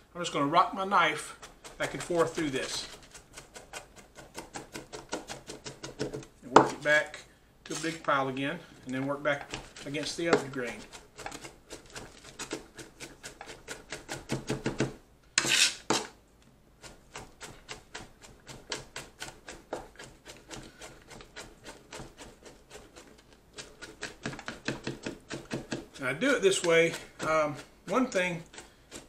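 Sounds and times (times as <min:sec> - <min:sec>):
knife scrape: 0:01.0 - 0:14.3, 0:15.4 - 0:16.2, 0:16.8 - 0:29.0.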